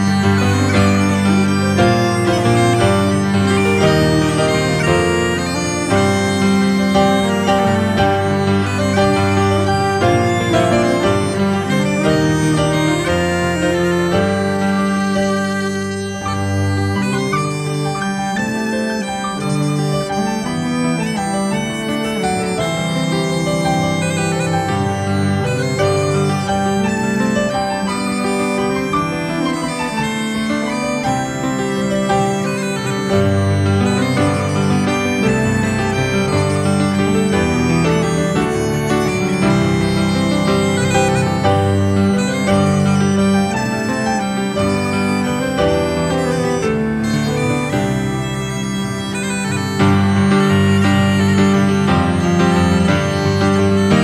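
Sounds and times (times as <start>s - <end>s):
acoustic folk waltz: 0.0s - 54.0s.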